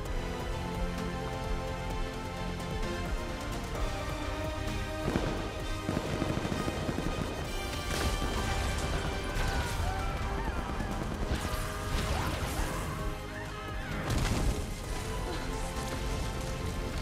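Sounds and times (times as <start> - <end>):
film music score: 0.0 - 17.0.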